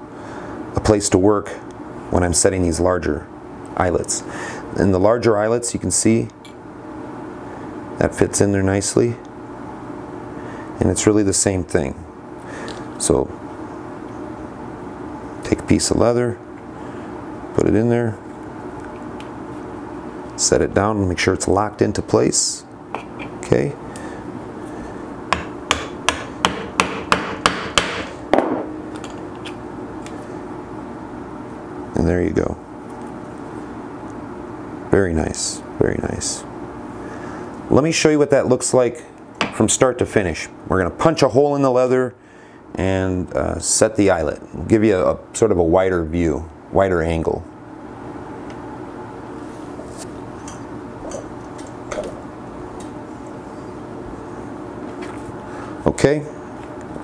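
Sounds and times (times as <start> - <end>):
steady background hum: 0.0 - 57.0.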